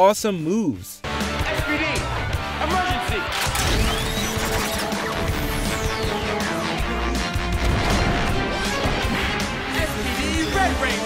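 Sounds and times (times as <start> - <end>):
driving action music: 0.3 - 11.0
impact and crash effects: 7.2 - 9.9.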